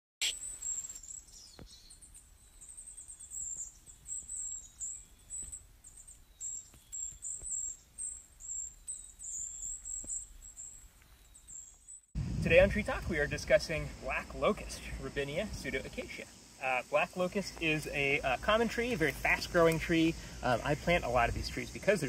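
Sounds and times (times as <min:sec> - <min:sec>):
small birds chirping: 0:00.2 - 0:12.2, 0:13.7 - 0:22.0
faint low rumble: 0:12.2 - 0:16.0.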